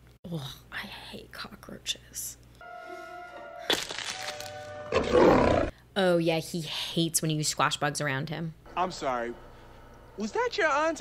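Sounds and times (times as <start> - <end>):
held orchestral notes: 2.6 - 5.3
loud creature roar: 4.9 - 5.7.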